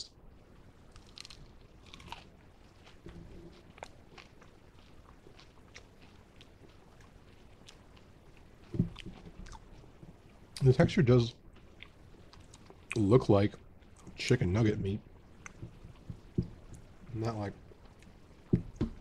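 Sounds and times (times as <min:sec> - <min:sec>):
chewing crispy breaded food: 0:00.5 - 0:19.0.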